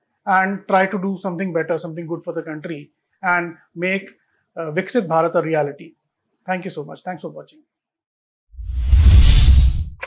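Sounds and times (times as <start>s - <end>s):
whoosh sound effect: 8.6s - 10.0s.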